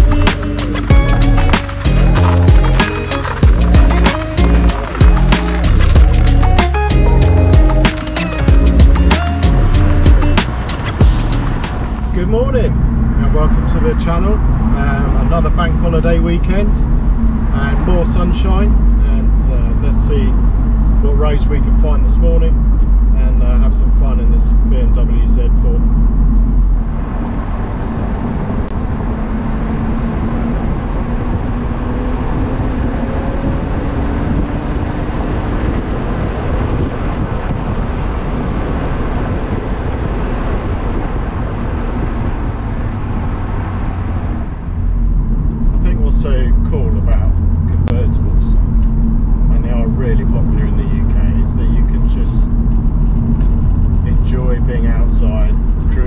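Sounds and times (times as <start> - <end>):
car engine drone: 0.0 - 56.0
dense wind rush: 0.0 - 56.0
road noise: 0.0 - 56.0.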